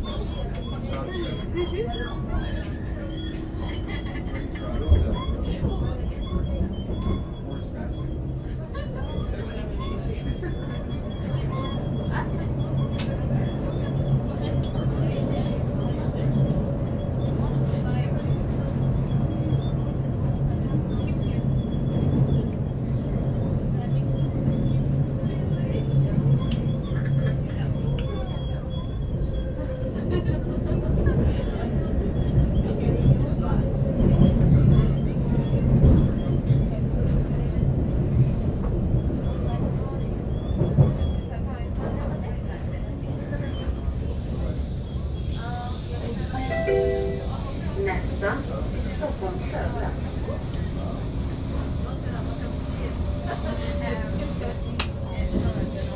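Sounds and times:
train running noise: 0:00.0 - 0:55.9.

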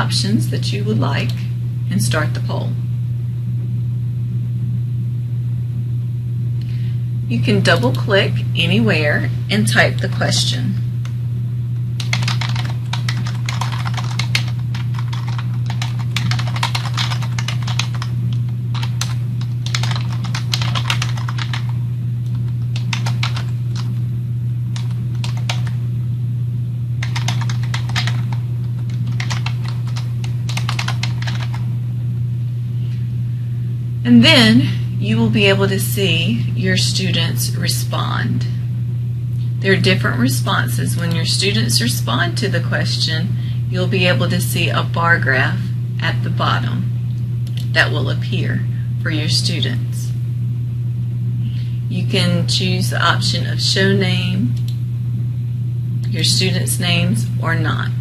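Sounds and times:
low electrical hum: 0:00.0 - 0:58.0
computer keyboard typing: 0:12.0 - 0:23.9, 0:24.8 - 0:25.8, 0:27.0 - 0:31.6.

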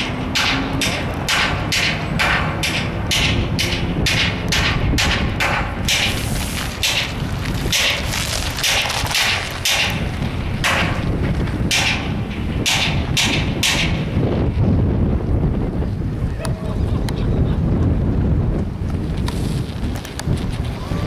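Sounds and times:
hissing wind gusts: 0:00.0 - 0:21.0
wind buffeting microphone: 0:00.0 - 0:21.0.

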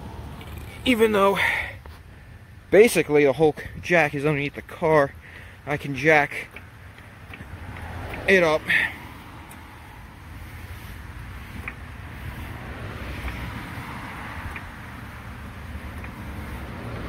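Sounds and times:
road traffic rumble: 0:00.0 - 0:17.0.

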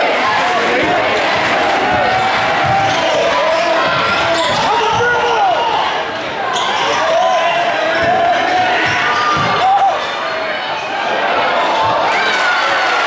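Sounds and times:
crowd noise: 0:00.0 - 0:13.0
sneaker squeaks: 0:02.1 - 0:10.1.

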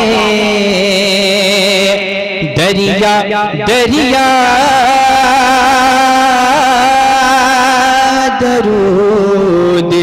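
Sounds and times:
man singing a long note: 0:00.0 - 0:10.0.

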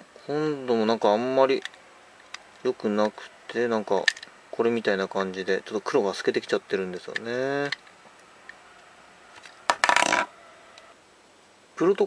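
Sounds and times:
plastic toy parts clicking: 0:04.0 - 0:04.3.

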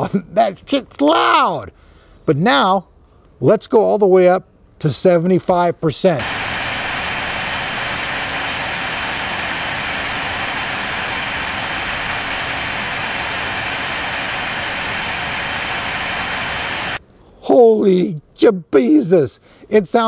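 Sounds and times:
loud blower fan whoosh: 0:06.2 - 0:17.0.

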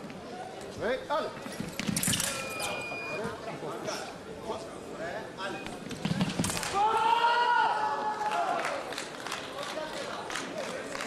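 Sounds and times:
people shouting: 0:06.6 - 0:08.6.

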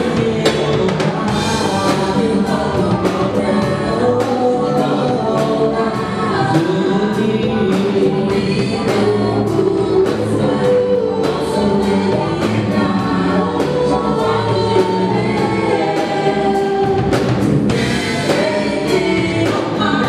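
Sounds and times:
drum kit beat: 0:00.0 - 0:20.0
keyboard: 0:00.0 - 0:20.0
vocal group singing in harmony: 0:00.0 - 0:20.0.

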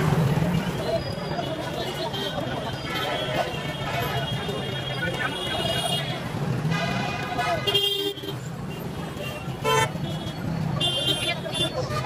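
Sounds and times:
street traffic engines: 0:00.0 - 0:12.0.

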